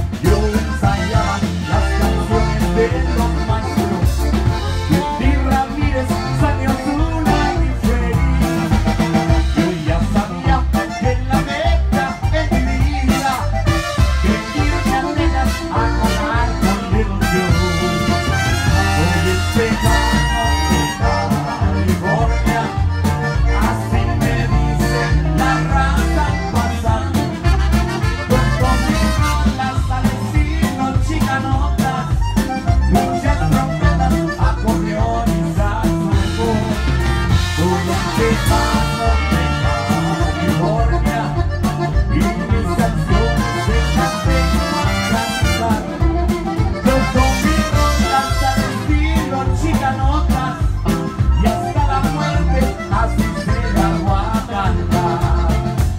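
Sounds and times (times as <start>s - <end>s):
button accordion: 0.0s - 55.9s
live band playing: 0.0s - 55.9s
man singing: 0.0s - 55.9s.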